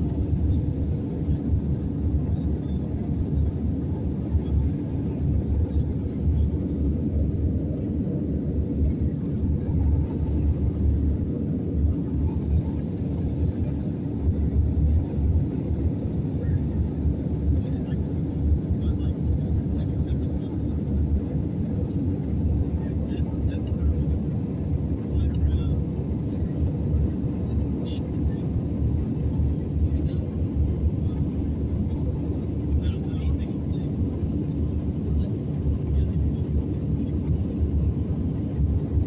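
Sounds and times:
airliner cabin engine rumble: 0:00.0 - 0:39.0.

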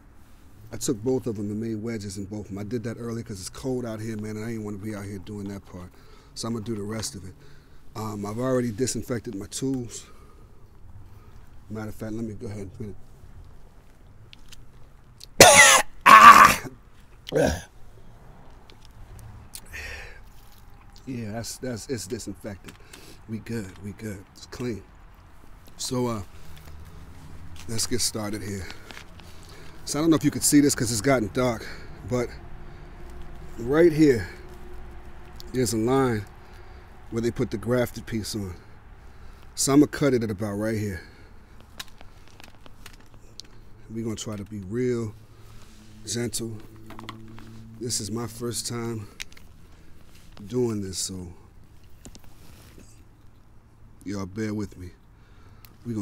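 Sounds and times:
light clicks and rustles: 0:13.0 - 0:15.2, 0:18.4 - 0:19.3, 0:21.9 - 0:30.3, 0:41.4 - 0:44.8, 0:49.1 - 0:53.6
man coughing harshly: 0:15.4 - 0:16.7.

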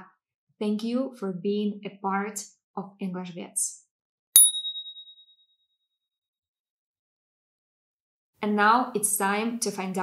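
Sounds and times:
bright bell ding: 0:04.4 - 0:05.4.

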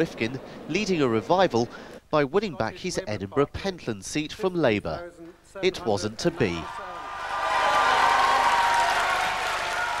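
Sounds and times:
crowd applauding: 0:06.7 - 0:10.0.

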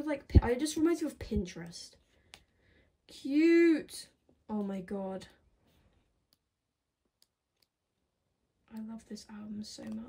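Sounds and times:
woman speaking: 0:00.0 - 0:02.0, 0:03.1 - 0:05.4, 0:08.7 - 0:10.0.

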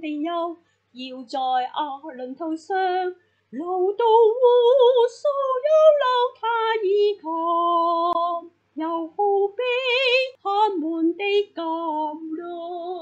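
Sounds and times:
woman singing hymn unaccompanied: 0:00.0 - 0:13.0.

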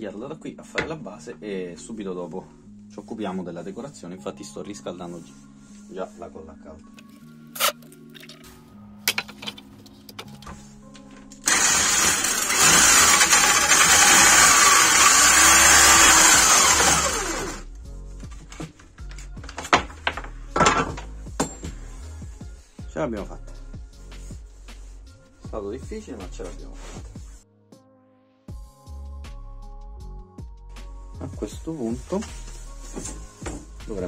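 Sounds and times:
electric drill cutting wood: 0:11.4 - 0:17.6.

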